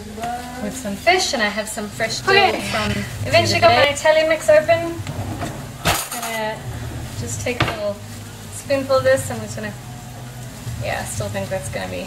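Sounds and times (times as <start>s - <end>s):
low steady hum: 0.0s - 12.0s
woman's voice: 0.2s - 5.0s, 6.1s - 6.6s, 7.2s - 8.0s, 8.6s - 9.8s, 10.8s - 12.0s
drawer pushed shut with cutlery clink: 5.1s - 6.3s.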